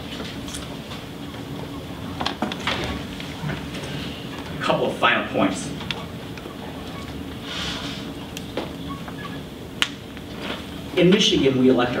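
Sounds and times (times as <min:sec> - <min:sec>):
meeting room hum: 0:00.0 - 0:12.0.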